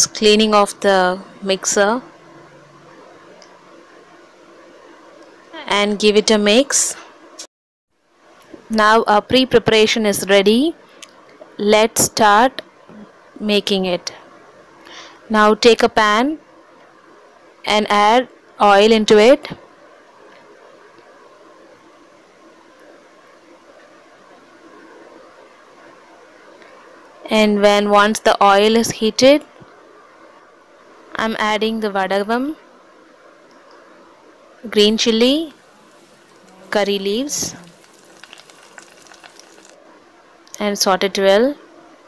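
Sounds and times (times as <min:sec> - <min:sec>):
faint background hiss: 0:00.0 - 0:42.0
food sizzling in hot oil: 0:35.0 - 0:39.8
small crackling pops: 0:35.6 - 0:39.8.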